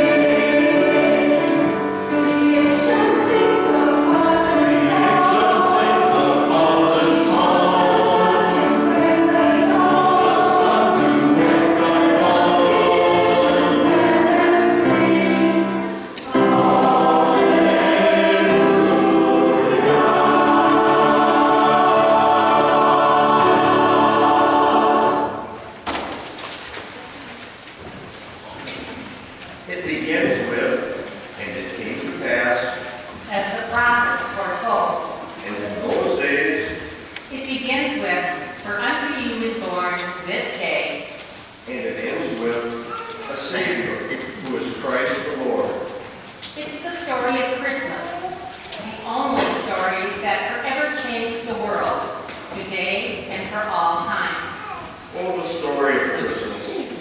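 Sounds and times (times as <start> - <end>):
church choir singing: 0.0 - 26.2, 30.0 - 33.1, 40.8 - 46.3, 55.0 - 57.0.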